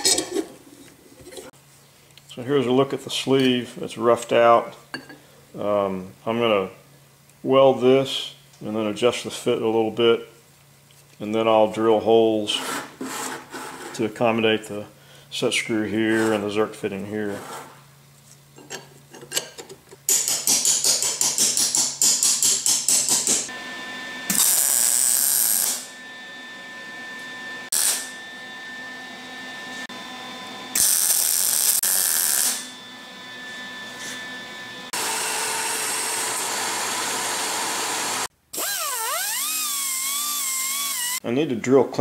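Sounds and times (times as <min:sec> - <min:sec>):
welder crackling and hissing: 0:24.3 - 0:25.9, 0:27.7 - 0:28.1, 0:30.7 - 0:32.7
disc sander grinding: 0:27.0 - 0:41.2.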